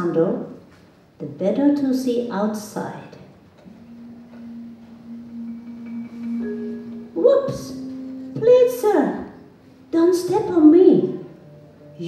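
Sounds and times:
faint higher tone: 3.7 - 12.0
low sustained musical note: 3.7 - 12.0.

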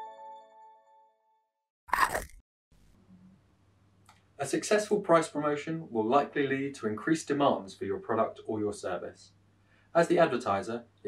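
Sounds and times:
crunchy bite: 1.9 - 2.4.

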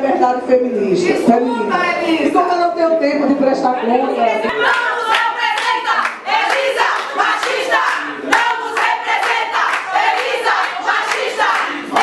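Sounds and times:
women chanting in unison: 4.4 - 12.0
hands clapping: 4.6 - 12.0.

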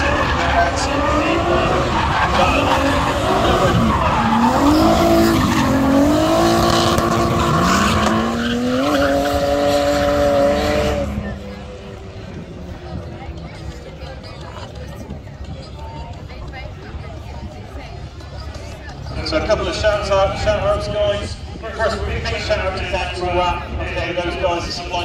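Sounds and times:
tyre screech: 0.0 - 11.0
car engines revving hard: 0.0 - 15.8.

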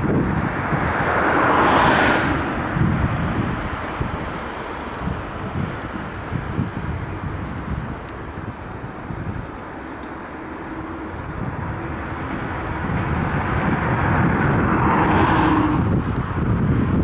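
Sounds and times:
road noise: 0.0 - 17.0
vehicle engine: 0.0 - 17.0.

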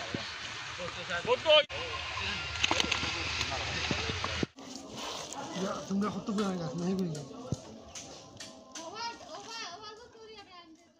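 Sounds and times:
children talking: 4.7 - 10.9.

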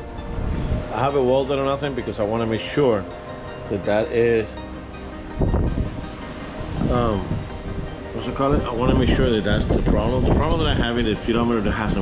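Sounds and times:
wind rumble on microphone: 0.0 - 4.0, 5.1 - 12.0
soft background music: 0.0 - 12.0.

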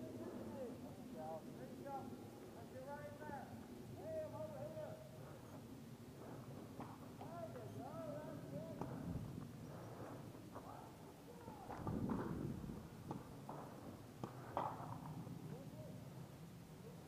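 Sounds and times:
distant voices calling out: 0.0 - 11.9.

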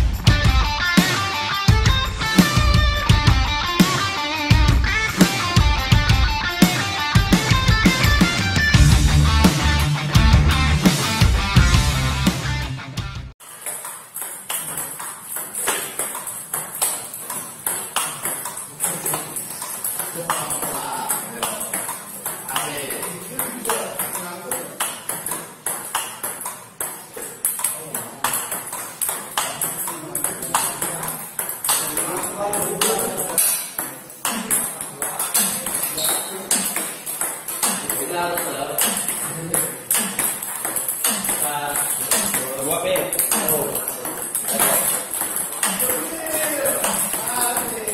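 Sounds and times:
table tennis balls clicking: 13.4 - 47.9.

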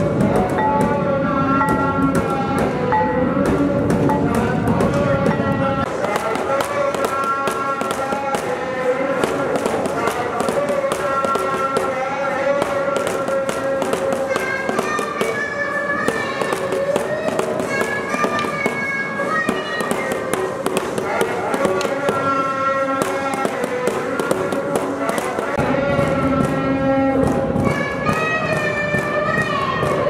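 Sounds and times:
devotional singing: 0.0 - 15.9.

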